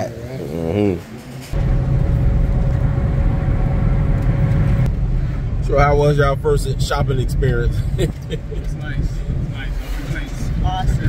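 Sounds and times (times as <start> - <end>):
car engine rumble from inside: 0.5 - 11.0.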